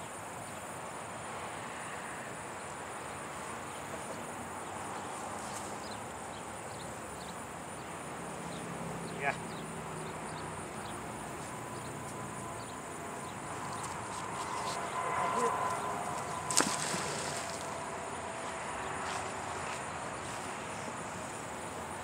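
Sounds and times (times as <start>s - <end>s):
outdoor background noise: 0.0s - 22.0s
magnet splashing into water: 16.5s - 17.7s.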